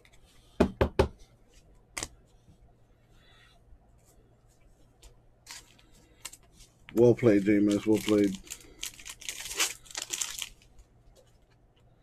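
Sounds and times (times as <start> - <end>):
knocks on a tabletop: 0.6 - 1.2.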